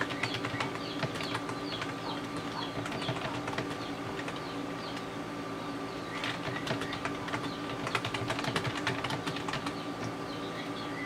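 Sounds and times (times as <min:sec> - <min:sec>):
computer keyboard clicking: 0:00.0 - 0:04.4, 0:06.2 - 0:10.1.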